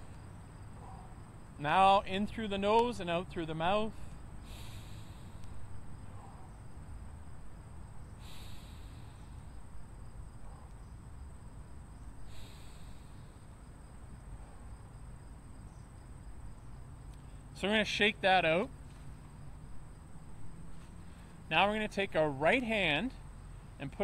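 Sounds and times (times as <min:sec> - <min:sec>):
man breathing deeply: 0:03.9 - 0:06.5, 0:08.1 - 0:09.7, 0:12.2 - 0:13.7.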